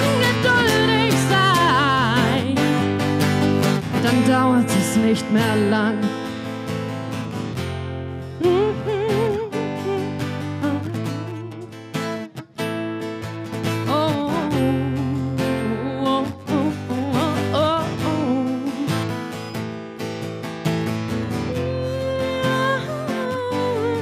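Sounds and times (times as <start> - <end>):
woman singing into microphone: 0.0 - 2.9, 3.9 - 6.3, 8.4 - 11.8, 13.7 - 19.2, 21.4 - 24.0
acoustic guitar strumming chords: 0.0 - 24.0.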